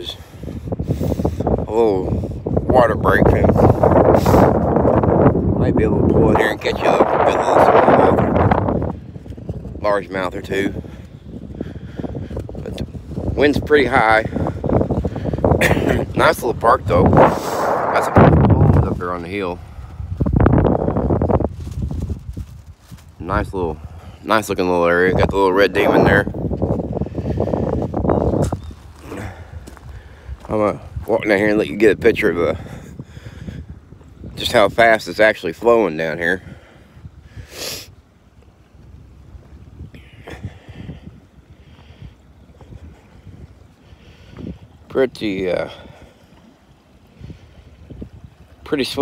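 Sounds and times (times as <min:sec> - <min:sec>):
wind buffeting microphone: 0:00.0 - 0:49.0.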